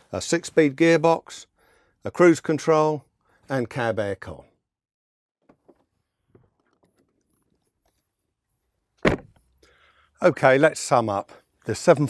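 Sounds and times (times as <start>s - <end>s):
door slamming shut: 9.0s - 9.4s.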